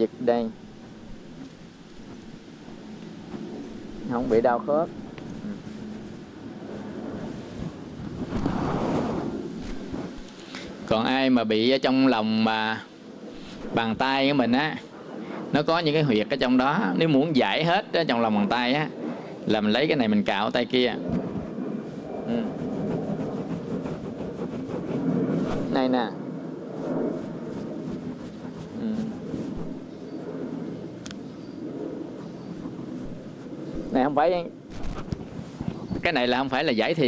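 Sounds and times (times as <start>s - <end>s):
cloth and hands rustling: 21.8s - 25.8s, 26.7s - 30.3s, 32.0s - 34.1s, 34.7s - 36.1s.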